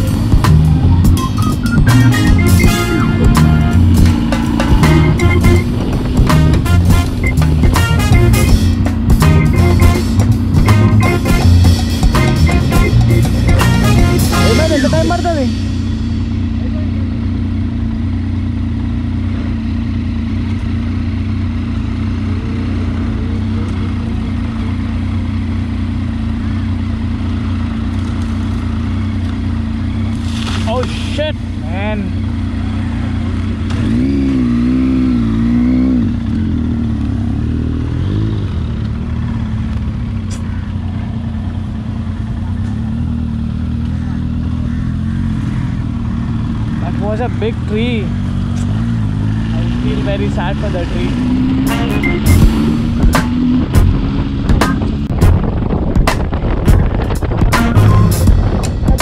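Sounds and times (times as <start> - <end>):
background music with drums: 0.0 - 16.6, 51.6 - 59.0
motorcycle engine running: 0.0 - 59.0
wind and road noise: 0.0 - 59.0.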